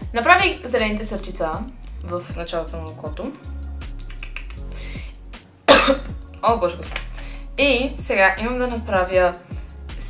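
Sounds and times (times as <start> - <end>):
woman's voice: 0.0 - 3.5, 6.4 - 10.0
woman coughing: 5.7 - 6.2.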